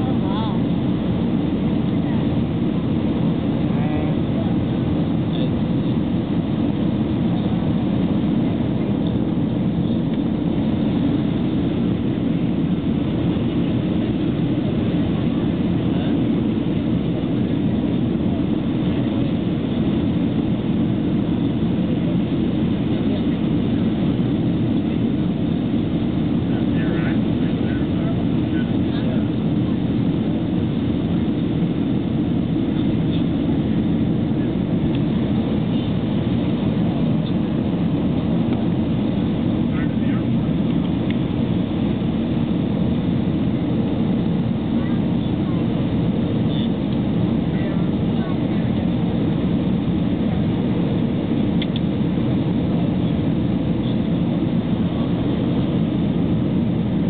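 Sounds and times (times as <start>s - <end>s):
airflow over airframe: 0.0s - 57.0s
jet engines heard from cabin: 0.0s - 57.0s.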